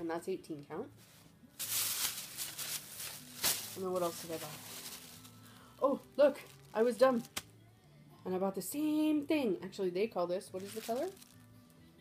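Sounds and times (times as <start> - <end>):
fabric rustling: 1.0 - 7.4, 10.6 - 11.4.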